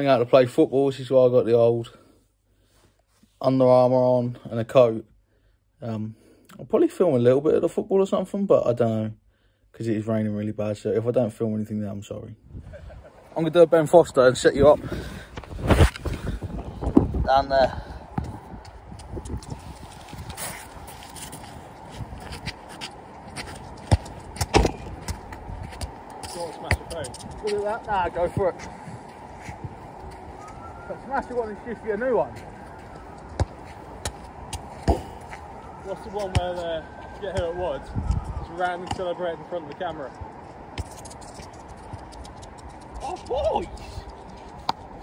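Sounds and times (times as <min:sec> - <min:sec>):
football thuds: 0:22.2 - 0:27.6, 0:32.8 - 0:35.4, 0:36.0 - 0:37.6, 0:38.8 - 0:39.2.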